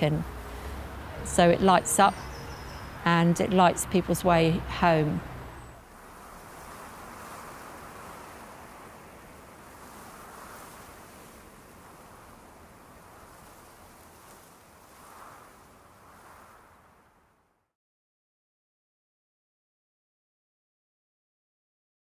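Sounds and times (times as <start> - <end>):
soft rushing noise: 0.0 - 17.6.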